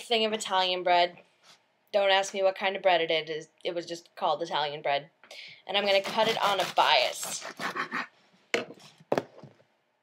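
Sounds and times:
knife slicing crusty bread: 0:05.9 - 0:07.7.

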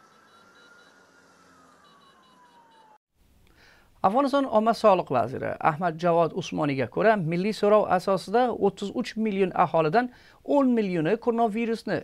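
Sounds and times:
siren wailing: 0:00.0 - 0:03.0
faint background noise: 0:03.2 - 0:12.0.

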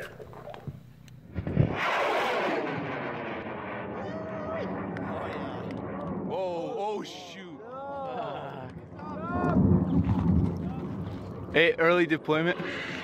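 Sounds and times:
rocket motor igniting bang: 0:01.3 - 0:06.4
rocket roar: 0:01.3 - 0:07.4, 0:08.5 - 0:11.8, 0:12.5 - 0:13.0.

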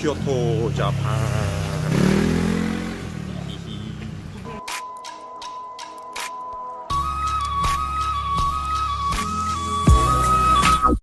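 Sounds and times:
motor vehicle passing: 0:00.0 - 0:04.6
street noise: 0:00.0 - 0:11.0
background music with beats: 0:04.6 - 0:11.0.

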